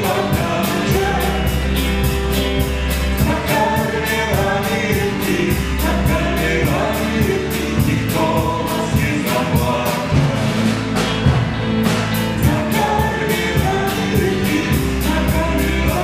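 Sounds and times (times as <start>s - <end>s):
drum kit beat: 0.0s - 16.0s
electric guitars: 0.0s - 16.0s
voices singing: 0.0s - 16.0s.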